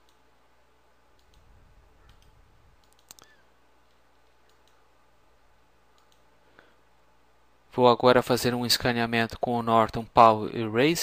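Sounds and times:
faint clicks: 0.0s - 0.2s, 1.1s - 4.8s, 5.9s - 6.3s
faint room hum: 0.0s - 11.0s.

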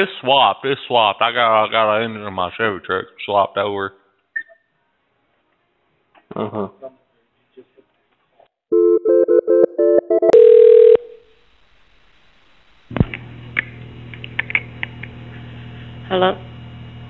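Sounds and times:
long telephone tone: 8.7s - 11.2s.

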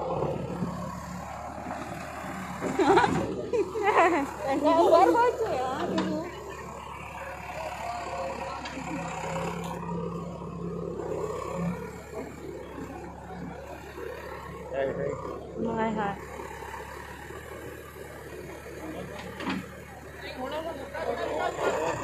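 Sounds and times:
diesel engine running: 0.0s - 22.0s
people's voices: 1.9s - 16.3s, 18.2s - 22.0s.

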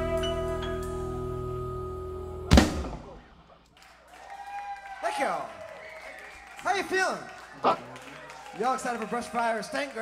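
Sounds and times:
band and drum kit final hit: 2.5s - 3.3s.

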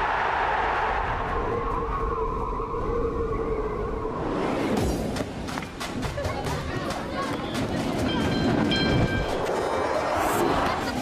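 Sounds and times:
streetcar running on rails: 4.8s - 11.0s.

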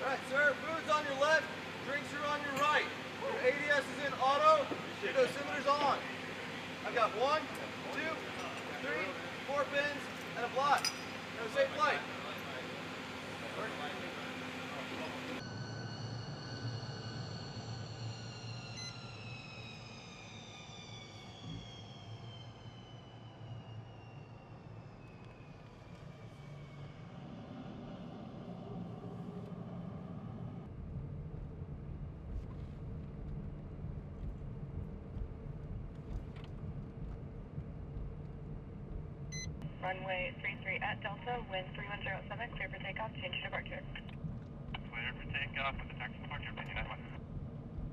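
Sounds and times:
jet engine whine: 0.0s - 47.9s
low hum: 0.0s - 47.9s
deep rumble: 21.3s - 47.9s.

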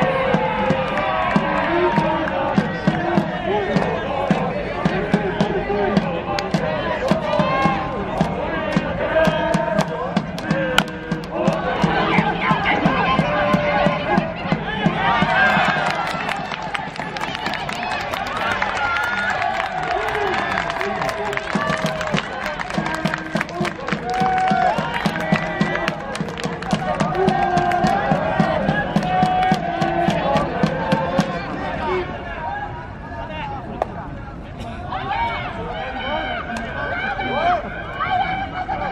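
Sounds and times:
crowd clapping: 0.0s - 5.5s, 6.3s - 13.9s, 15.0s - 31.5s
steady drum beat: 0.0s - 16.6s, 21.5s - 31.5s
crowd chanting and singing: 0.0s - 33.1s.

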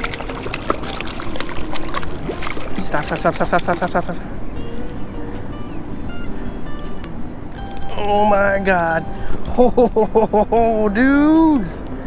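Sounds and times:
water splashing from thrashing fish: 0.0s - 4.2s.

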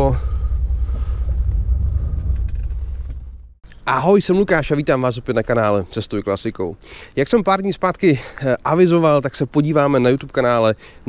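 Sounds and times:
car engine rumble from cabin: 0.0s - 3.6s.

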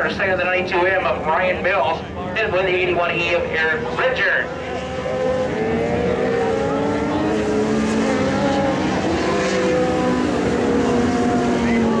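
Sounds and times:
race car engines droning: 0.0s - 12.0s.

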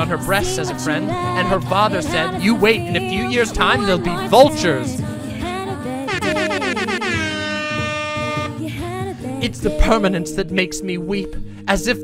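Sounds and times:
wavering horn tone: 6.1s - 8.7s.

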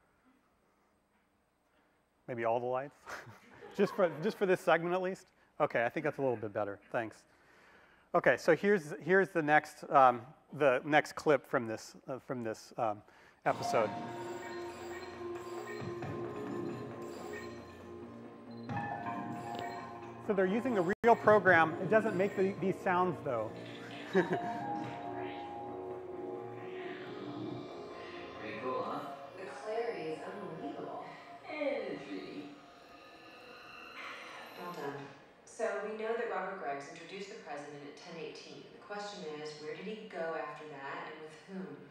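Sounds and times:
sustained synthesized music: 13.5s - 34.8s
chiming effect: 13.5s - 35.0s
electronic computer sound effects: 13.5s - 35.1s.

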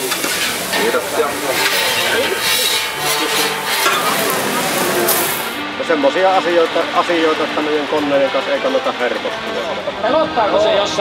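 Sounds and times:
metal spatula scraping: 0.0s - 5.6s
potatoes and meat sizzling: 0.0s - 9.8s.

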